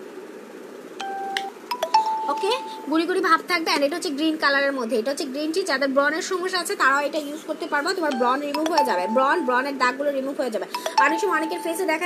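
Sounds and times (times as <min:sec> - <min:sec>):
electronic beep tones: 0:10.8 - 0:12.0.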